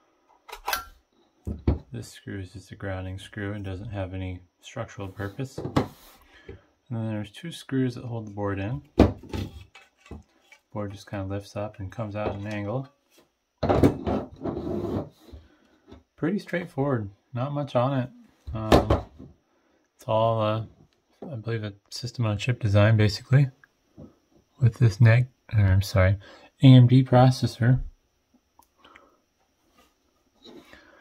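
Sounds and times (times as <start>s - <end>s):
circuit board scraping on tabletop: 14.1s - 15.4s.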